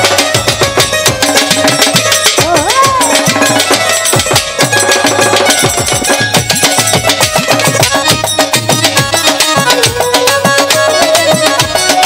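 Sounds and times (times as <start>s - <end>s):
fast dense drumming: 0.0s - 12.0s
sustained melodic accompaniment: 0.0s - 12.0s.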